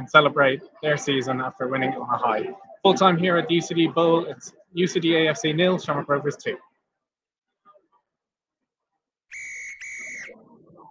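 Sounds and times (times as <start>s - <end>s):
referee's whistle blasts: 9.3s - 10.4s.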